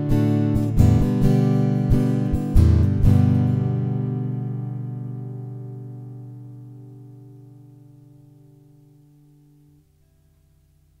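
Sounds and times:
acoustic guitar chord ringing out: 0.0s - 11.0s.

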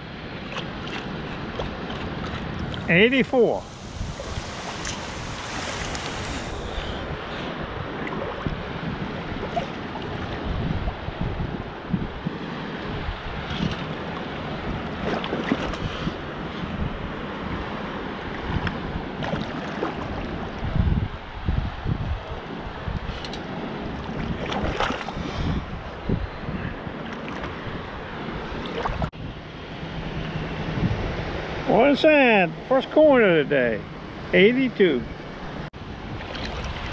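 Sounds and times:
water splashes: 0.0s - 10.6s, 12.8s - 16.6s, 18.2s - 20.6s, 23.5s - 25.6s, 26.9s - 29.2s, 36.0s - 36.9s
water washing and sloshing: 0.0s - 10.9s, 12.2s - 16.8s, 17.4s - 20.7s, 23.2s - 25.8s, 26.8s - 29.2s, 36.0s - 36.9s
wind buffeting microphone: 0.0s - 31.6s.

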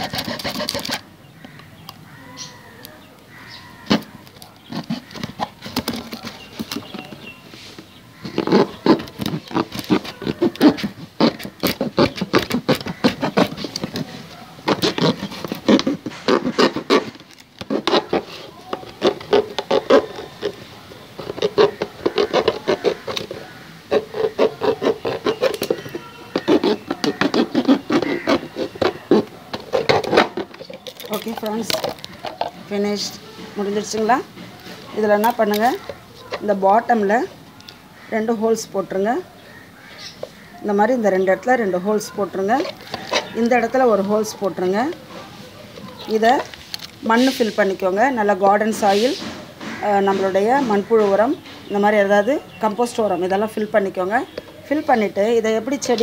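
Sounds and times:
knife sawing plastic bottle: 0.0s - 1.5s, 3.8s - 7.4s, 8.2s - 36.5s, 42.5s - 47.5s.

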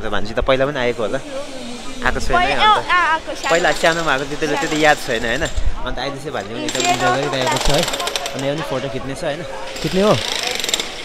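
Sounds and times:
people talking in a crowd: 0.0s - 11.0s
fast mechanical rattle: 6.7s - 8.7s.

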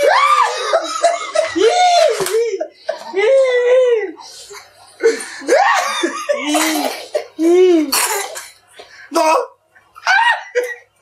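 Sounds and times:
men laughing hard: 0.0s - 3.4s, 5.0s - 6.5s
men coughing: 0.4s - 1.7s, 4.4s - 8.6s.

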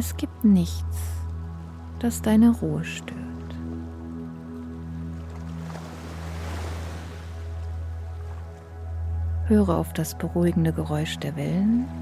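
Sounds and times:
ambient meditation music: 0.0s - 12.0s
ocean wave washing ashore: 5.6s - 7.5s.

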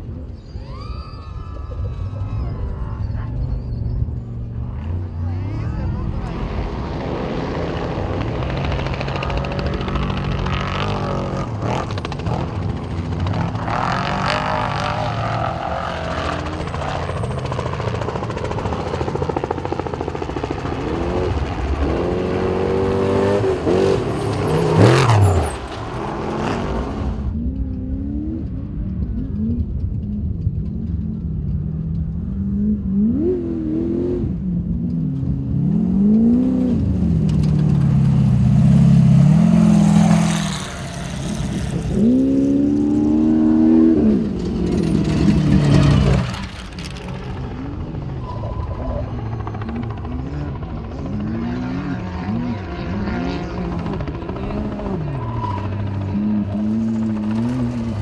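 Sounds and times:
off-road vehicle engines revving: 0.0s - 58.0s.

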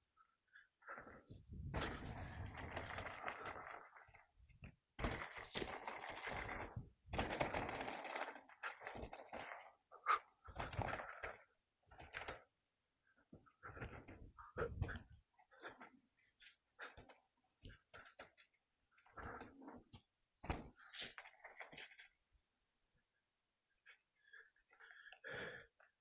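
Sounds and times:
mountain bike rattling: 1.7s - 4.2s, 5.0s - 12.4s
bike chain jingling: 2.2s - 3.8s, 7.2s - 12.4s.

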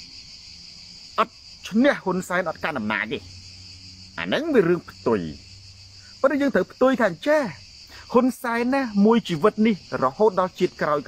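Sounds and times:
high-pitched insect chorus: 0.0s - 11.0s
man speaking: 1.2s - 3.3s, 4.2s - 5.4s, 6.1s - 11.0s.

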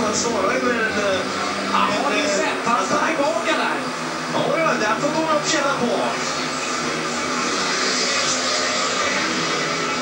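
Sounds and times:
motorcycle engines racing: 0.0s - 10.0s.

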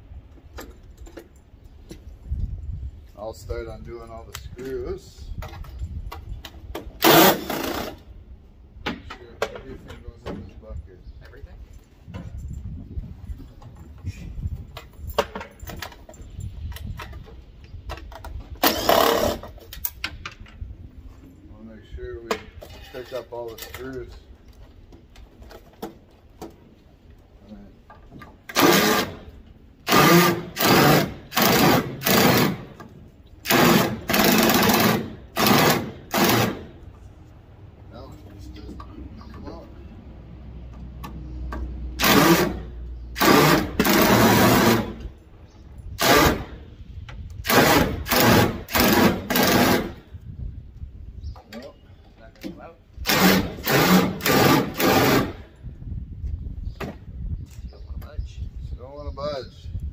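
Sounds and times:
power driver backing out screws: 28.4s - 29.3s, 29.9s - 36.6s.

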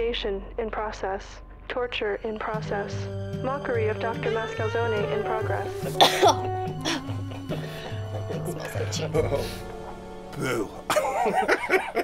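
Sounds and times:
background music with bass line: 0.0s - 12.0s
woman gasping and coughing: 5.8s - 9.5s.

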